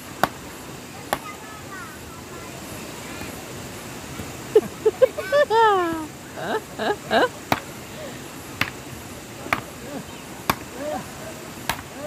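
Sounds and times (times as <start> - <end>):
blade chopping strikes: 11.6 - 11.9.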